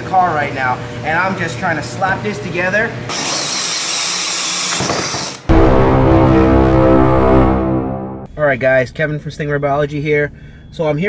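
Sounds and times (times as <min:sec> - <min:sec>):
drill whining through plastic: 0:03.1 - 0:05.5
loud intro music: 0:05.5 - 0:08.3.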